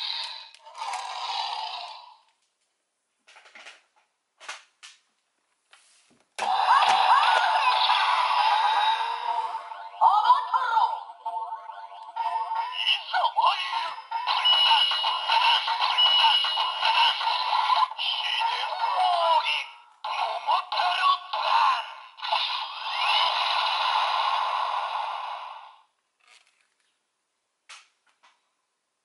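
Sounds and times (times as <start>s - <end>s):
toy speaker playing sung jingle: 6.4s - 22.0s.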